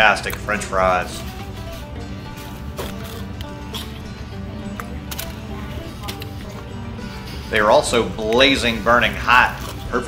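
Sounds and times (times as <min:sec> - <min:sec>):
background music: 0:00.0 - 0:10.0
crunching of chewing fries: 0:01.6 - 0:06.7.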